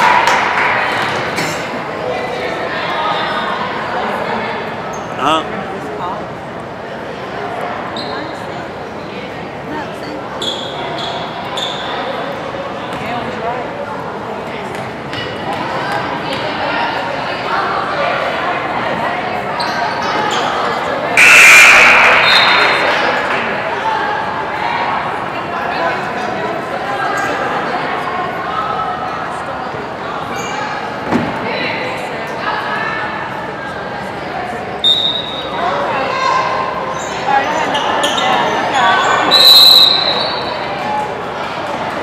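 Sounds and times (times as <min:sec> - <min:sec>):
spectators talking: 0:00.0 - 0:42.0
sudden loud burst of noise: 0:21.2 - 0:23.9.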